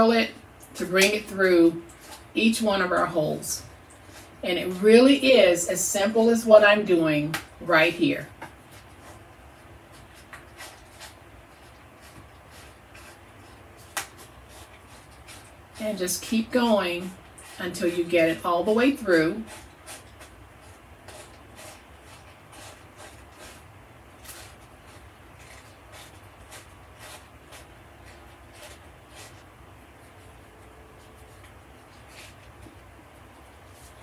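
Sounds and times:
wire coil rustling through paper: 0:08.1 - 0:34.0.

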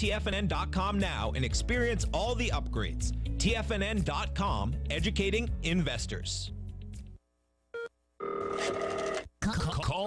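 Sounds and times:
telephone ring tone: 0:07.8 - 0:09.2.

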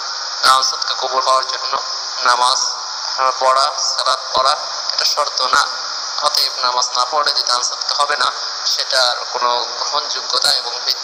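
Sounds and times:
steady high hiss: 0:00.0 - 0:11.0
man preaching: 0:00.4 - 0:11.0.

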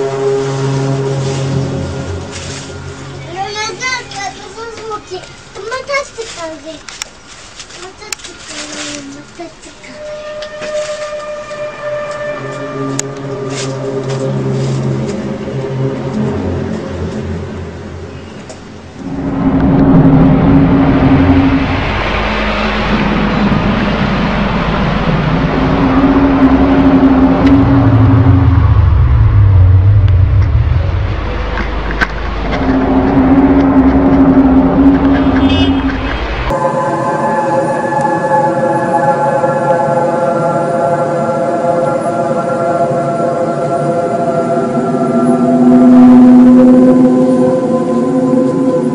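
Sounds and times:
loud rushing noise: 0:00.0 - 0:06.0, 0:12.7 - 0:48.9
low horn-like droning tones: 0:00.0 - 0:06.3, 0:08.2 - 0:48.9.

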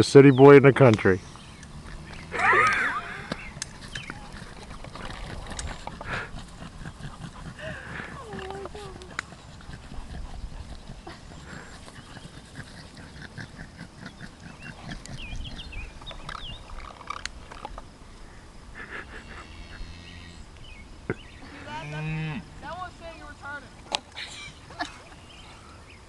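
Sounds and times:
voices shouting or laughing: 0:02.2 - 0:03.6.

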